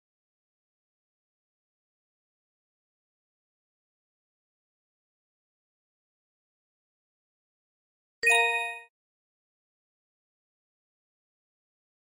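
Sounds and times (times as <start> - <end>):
short bell-like chime: 8.2 - 8.9.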